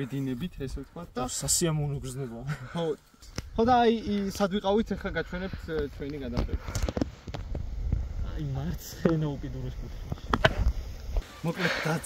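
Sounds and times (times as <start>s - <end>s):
man speaking: 0.0s - 3.0s, 11.3s - 12.0s
wind rumble on microphone: 3.4s - 11.2s.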